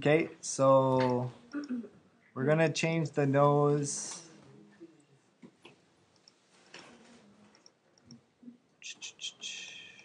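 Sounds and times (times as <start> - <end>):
soft hiss: 8.8 - 10.0.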